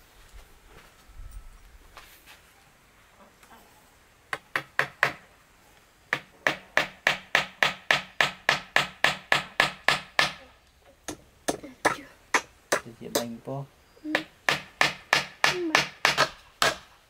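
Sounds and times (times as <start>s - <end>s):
hammer driving nails into wood: 4.3s - 5.3s, 6.1s - 10.4s, 14.2s - 16.9s.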